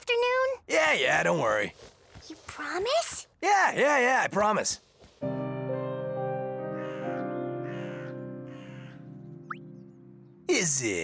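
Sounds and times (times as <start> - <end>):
held music chord: 5.2 - 11.0
crow cawing: 6.6 - 9.4.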